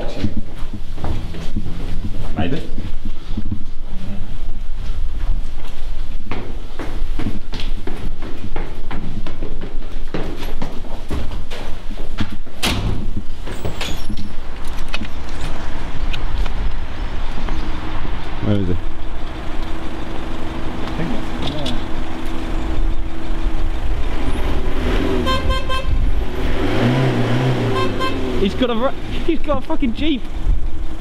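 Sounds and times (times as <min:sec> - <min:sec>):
low rumble: 0:00.0 - 0:06.3, 0:14.1 - 0:26.6
footsteps on stairs: 0:00.0 - 0:18.4.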